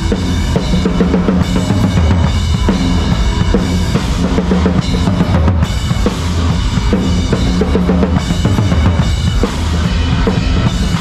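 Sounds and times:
heavy rock band playing: 0.0 - 11.0.

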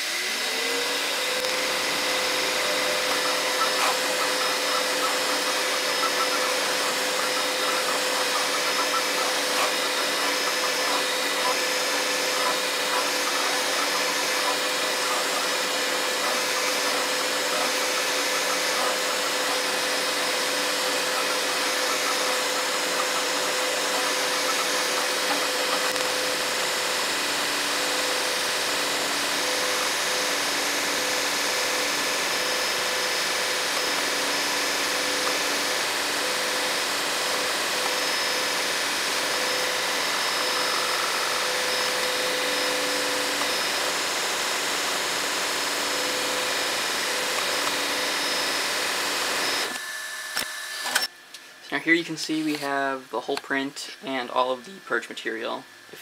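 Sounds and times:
printer motor humming: 0.0 - 51.1
cooling fans whirring: 0.0 - 56.0.

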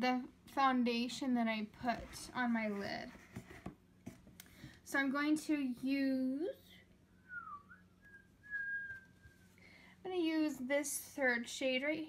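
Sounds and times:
person whistling a held note: 7.2 - 9.5.

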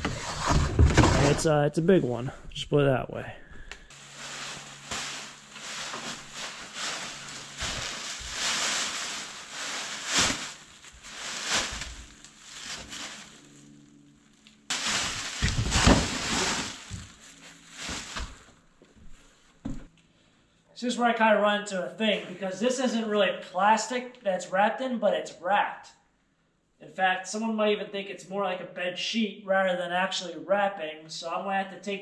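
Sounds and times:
plastic bag rustling: 3.9 - 19.5
heavy thumps: 14.7 - 17.2.

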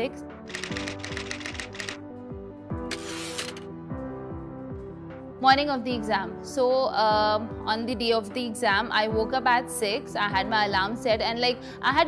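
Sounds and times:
typewriter keys clacking: 0.5 - 2.0.

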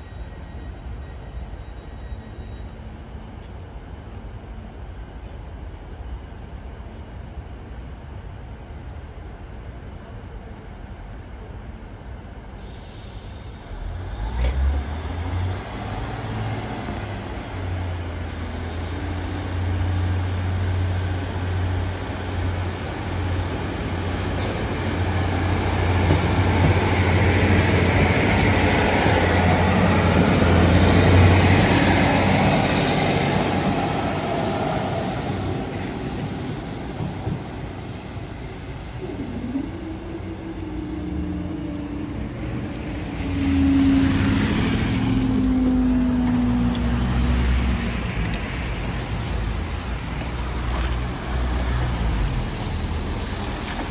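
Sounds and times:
road vehicle engines: 0.0 - 53.9
train engine hum: 0.0 - 53.9
train wheels rushing on rail: 12.5 - 50.7.

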